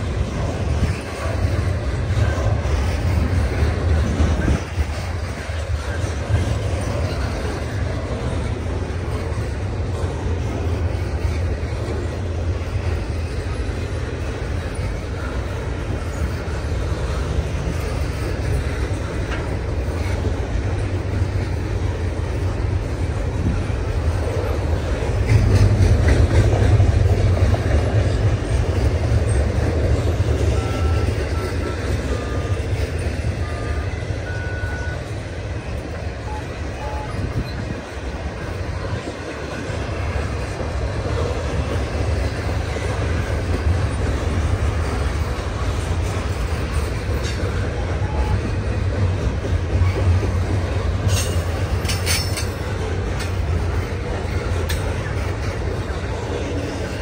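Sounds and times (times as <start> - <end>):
high squeaks of train wheels: 0.0 - 57.0
steel wheels rumbling on rail: 0.0 - 57.0
sharp clanks: 51.0 - 53.4.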